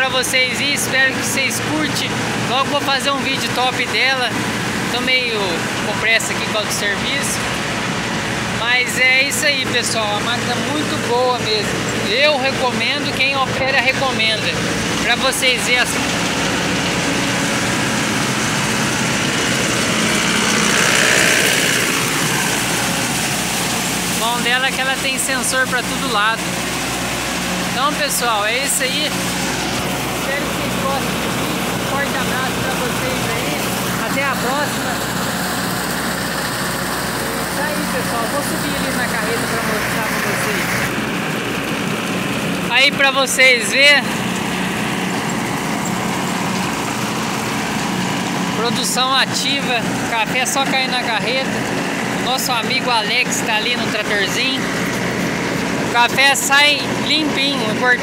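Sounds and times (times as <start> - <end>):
engine hum: 0.0 - 58.0
rush of harvesting machinery: 0.0 - 58.0.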